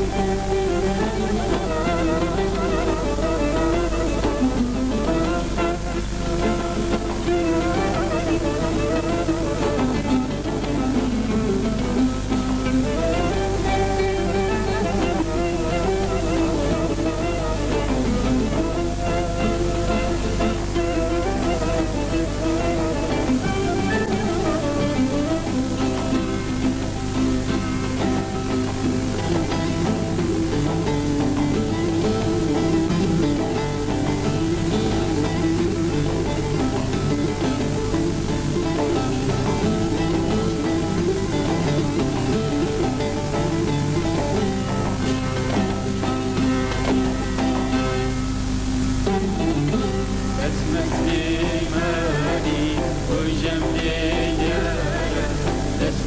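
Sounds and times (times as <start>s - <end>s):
plucked lutes ensemble: 0.0s - 56.0s.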